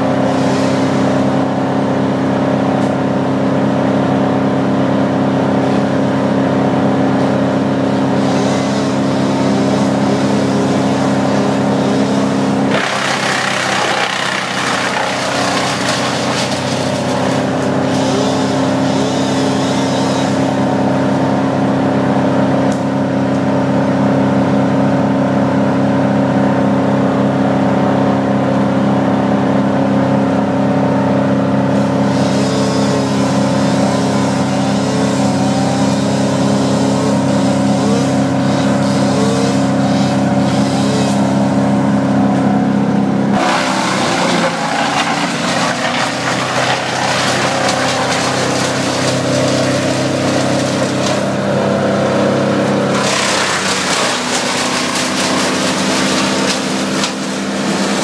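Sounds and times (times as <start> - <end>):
engine running steadily: 0.0 - 58.0.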